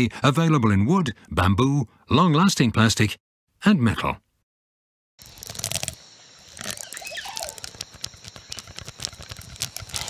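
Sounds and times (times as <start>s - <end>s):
plastic straws clicking and crinkling: 5.2s - 10.0s.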